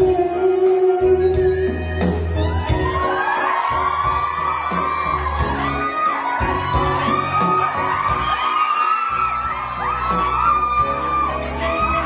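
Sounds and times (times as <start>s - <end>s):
live pop music: 0.0s - 12.0s
crowd screaming and cheering: 1.8s - 12.0s.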